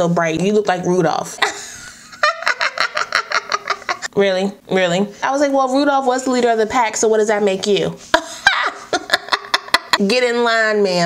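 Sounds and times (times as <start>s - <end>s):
woman cackling laughter: 1.4s - 4.1s, 8.2s - 10.0s.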